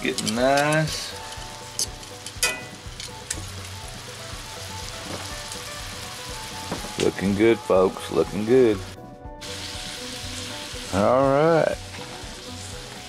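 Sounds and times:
sausages sizzling in a skillet: 0.0s - 13.0s.

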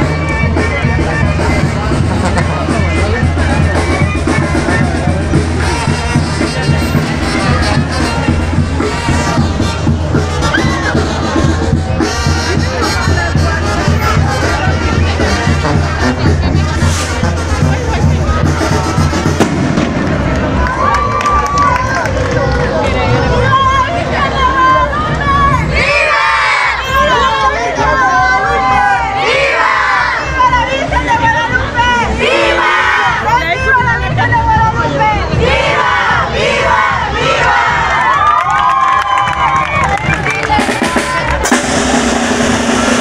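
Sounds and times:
crowd shouting and cheering: 0.0s - 43.0s.

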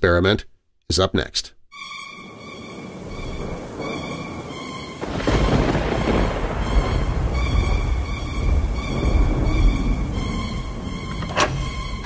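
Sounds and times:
eerie background music: 1.8s - 12.0s
rain hissing: 1.8s - 12.0s
thunder crack and rumble: 2.7s - 12.0s.

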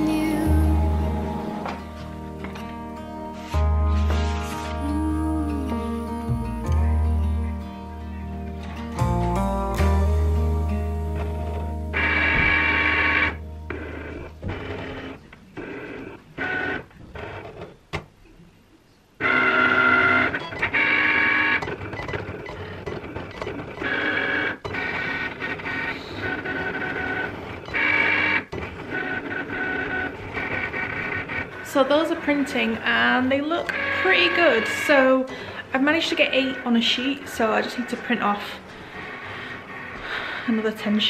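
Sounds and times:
cutting machine motors whining: 0.0s - 4.9s, 11.0s - 17.6s, 19.2s - 40.4s.

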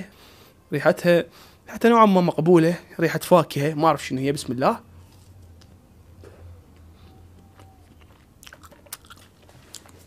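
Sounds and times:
chewing fruit: 5.1s - 10.0s.

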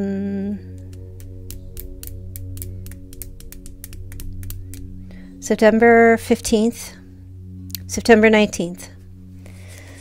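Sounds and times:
soft ambient background music: 0.0s - 10.0s.

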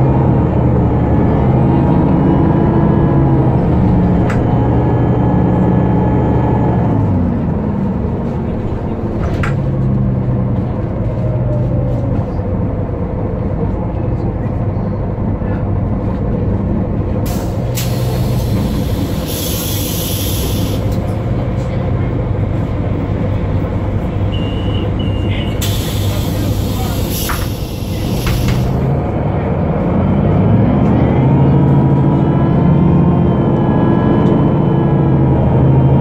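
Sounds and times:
bus diesel engine running: 0.0s - 36.0s
pneumatic air hisses: 17.3s - 20.9s, 25.6s - 28.8s
short double beep: 24.3s - 25.6s.

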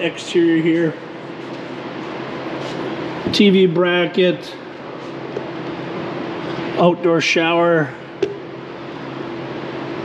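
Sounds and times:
continuous rushing hum: 0.0s - 10.0s.

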